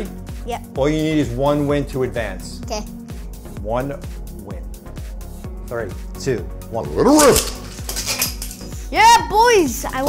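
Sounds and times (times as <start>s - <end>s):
spinning tops clashing metallic clinks: 7.2s - 8.8s.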